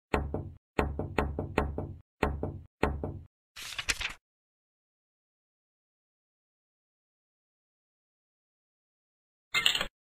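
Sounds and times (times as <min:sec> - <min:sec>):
hammer striking nail: 0:00.1 - 0:03.3.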